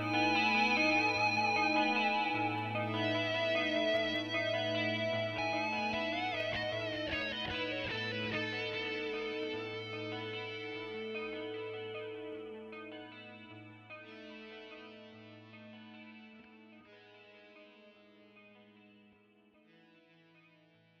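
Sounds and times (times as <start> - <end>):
electric guitar chords ringing out: 0.0 - 20.3.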